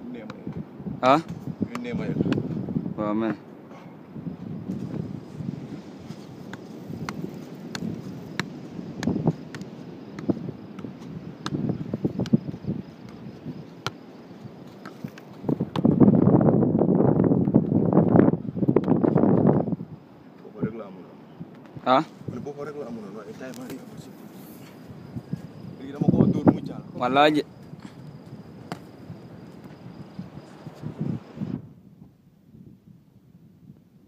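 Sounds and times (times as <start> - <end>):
football taps on foot: 6.5 - 11.6.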